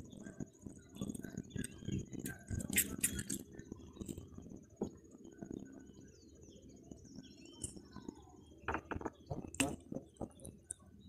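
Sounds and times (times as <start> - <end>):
high insect-like tone: 2.0 - 4.7
faint bird chirps: 4.9 - 11.0.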